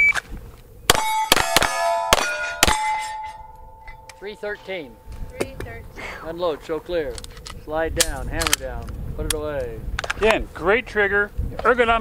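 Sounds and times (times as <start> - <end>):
pistol shots: 0.9 - 3.2
steel plate clanging: 0.9 - 5.2.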